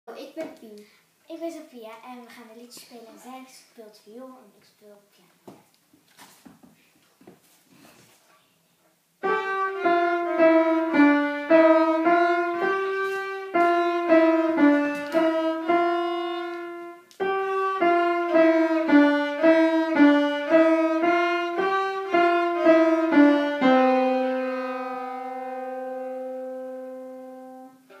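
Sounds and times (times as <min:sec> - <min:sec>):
faint shuffling: 0:00.2 - 0:09.0, 0:12.0 - 0:18.4
violin and piano tune: 0:09.2 - 0:28.0.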